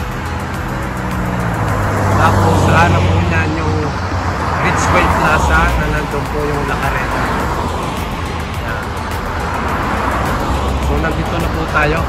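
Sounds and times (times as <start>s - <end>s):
cars passing on road: 0.0s - 12.0s.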